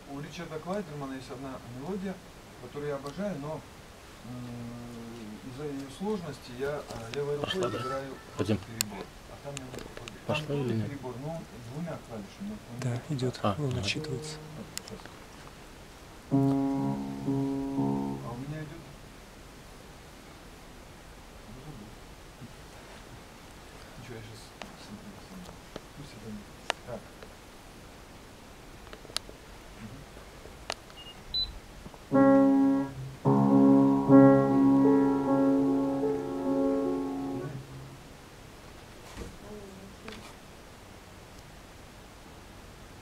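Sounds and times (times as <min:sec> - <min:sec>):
upright piano chords: 0:16.3 - 0:19.0, 0:32.1 - 0:38.1.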